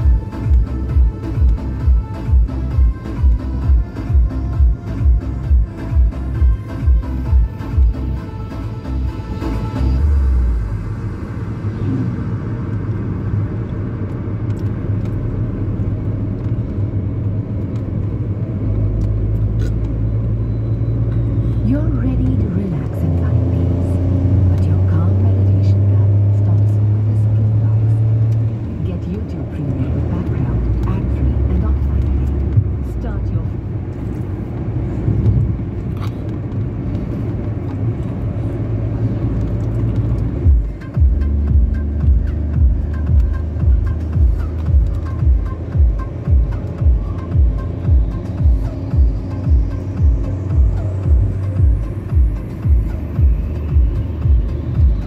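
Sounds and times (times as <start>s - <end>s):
car engine hum: 0.0s - 55.0s
road rumble: 0.0s - 55.0s.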